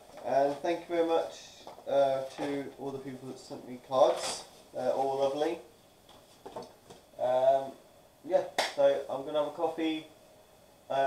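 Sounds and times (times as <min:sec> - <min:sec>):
man talking: 0:00.2 - 0:05.7, 0:07.2 - 0:10.1
finger snap: 0:08.6 - 0:08.8.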